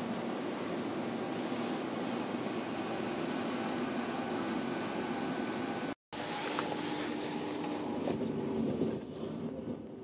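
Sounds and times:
train rumble inside carriage: 0.0 - 10.0.

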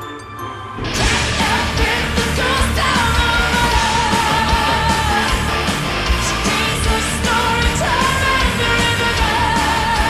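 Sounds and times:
metal band playing: 0.8 - 10.0.

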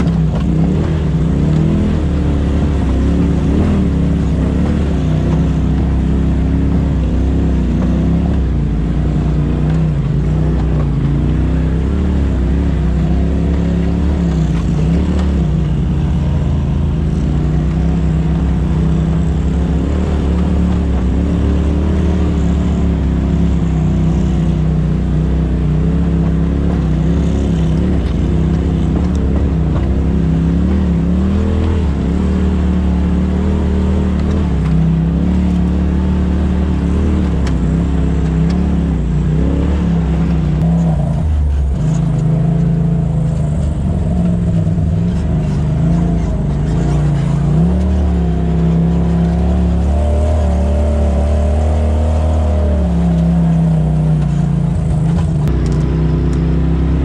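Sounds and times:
off-road vehicle engine running: 0.0 - 57.0.

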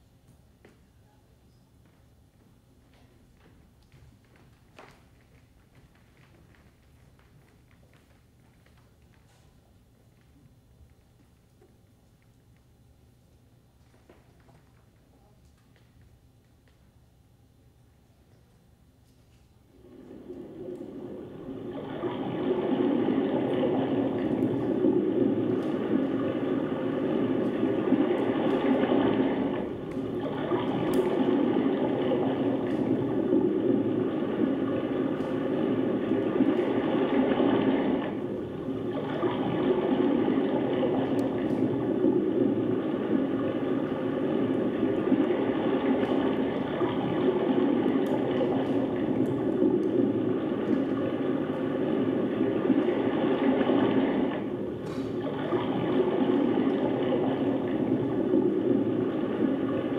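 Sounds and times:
ocean surf waves: 19.8 - 59.9.

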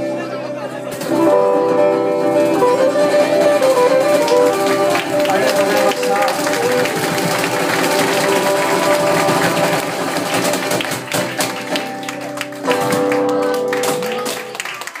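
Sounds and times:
live band playing final chord: 0.8 - 15.0.

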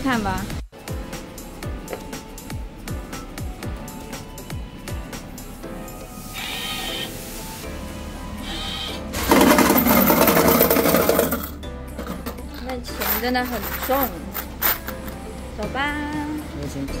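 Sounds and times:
banknote changer motor whirring: 6.4 - 7.1
coins pouring into tray: 9.2 - 11.5, 12.9 - 15.1.

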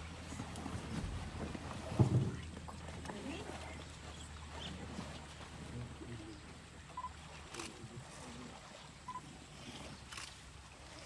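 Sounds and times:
quiet low voices: 4.5 - 8.8.

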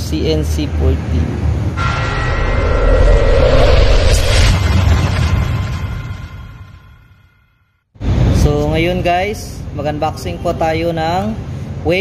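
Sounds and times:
loud rushing noise: 1.8 - 7.4
deep rumble: 1.8 - 7.5.

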